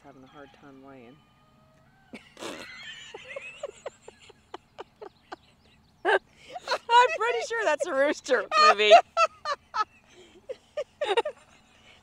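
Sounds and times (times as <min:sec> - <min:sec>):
person laughing: 0:02.2 - 0:05.4, 0:06.0 - 0:11.6.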